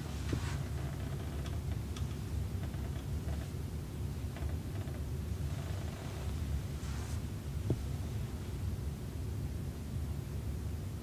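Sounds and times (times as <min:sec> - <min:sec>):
hands rustling over shirt: 0:00.0 - 0:01.4, 0:05.5 - 0:08.6
low room hum: 0:00.0 - 0:11.0.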